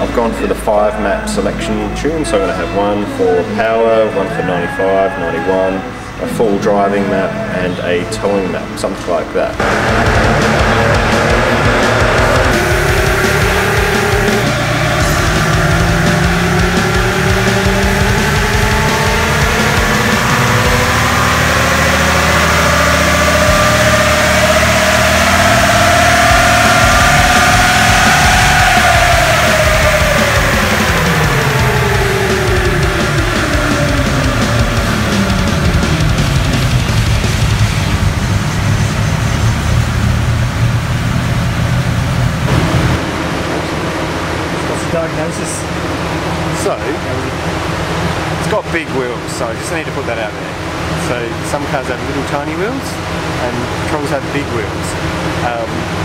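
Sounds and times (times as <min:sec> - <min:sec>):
music: 0:00.0 - 0:56.0
engine revving on dynamometer: 0:09.6 - 0:56.0.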